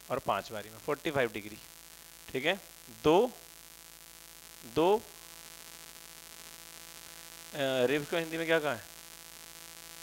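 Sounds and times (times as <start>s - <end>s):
electrical mains hum: 0.0s - 10.0s
man speaking: 0.1s - 1.7s, 2.3s - 3.4s, 4.6s - 5.1s, 7.5s - 8.9s.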